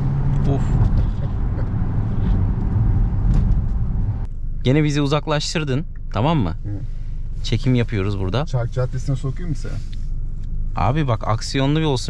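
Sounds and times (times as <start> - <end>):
car interior road rumble: 0.0 - 12.0.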